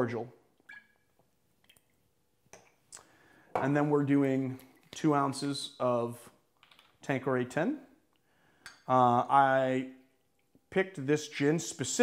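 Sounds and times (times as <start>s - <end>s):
faint clicks of glassware: 8.6s - 8.9s.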